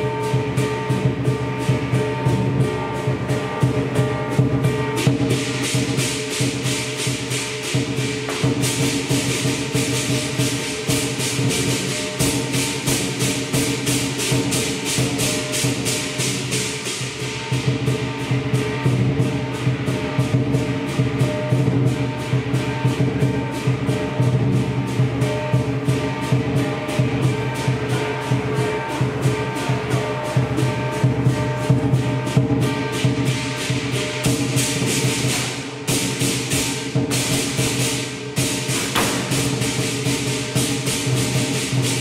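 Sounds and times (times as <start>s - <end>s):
cymbals: 0.0s - 42.0s
drum: 0.0s - 42.0s
gong: 0.0s - 42.0s.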